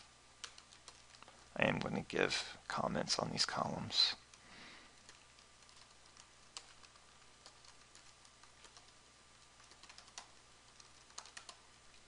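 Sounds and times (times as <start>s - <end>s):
faint typing on keyboard: 0.0s - 12.0s.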